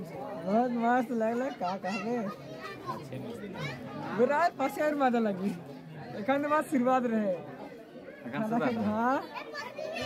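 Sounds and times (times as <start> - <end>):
voices talking and chattering: 0.0 - 10.0.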